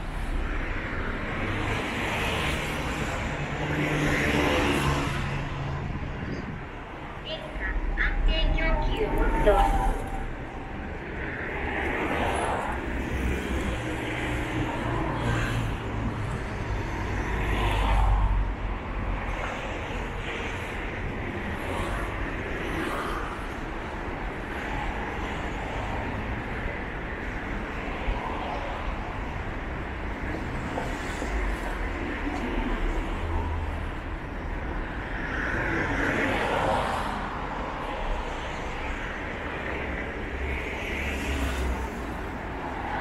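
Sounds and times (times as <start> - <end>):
vehicles passing on street: 0.0 - 43.0.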